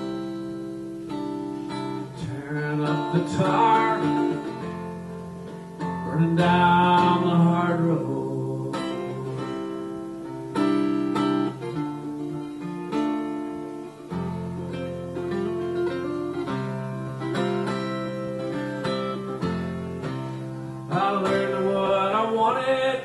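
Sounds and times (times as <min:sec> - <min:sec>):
acoustic guitar playing: 0:00.0 - 0:23.0.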